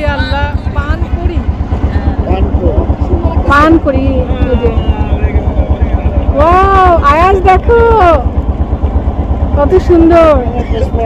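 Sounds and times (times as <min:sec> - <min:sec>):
boat engine running: 0:00.0 - 0:11.0
people's voices: 0:00.0 - 0:11.0.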